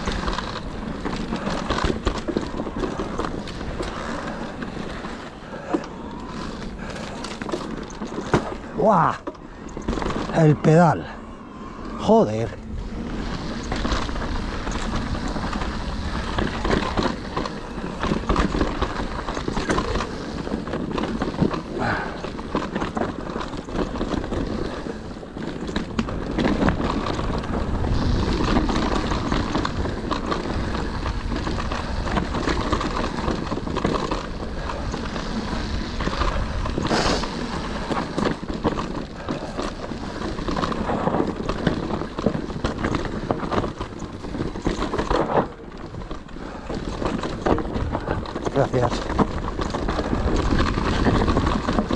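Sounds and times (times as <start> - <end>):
bike knocks and rattles: 0.0 - 10.4, 13.0 - 51.9
tyres clattering on loose stones: 14.7 - 51.9.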